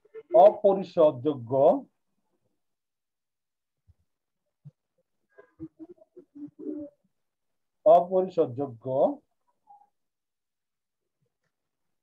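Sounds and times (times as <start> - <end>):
bird cooing: 5.7 - 7.0.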